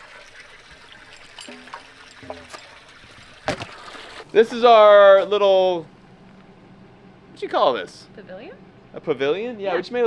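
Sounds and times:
water trickling: 0.0 - 4.9.

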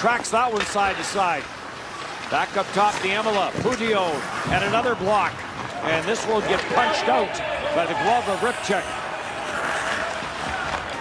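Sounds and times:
rink and crowd noise: 0.0 - 11.0.

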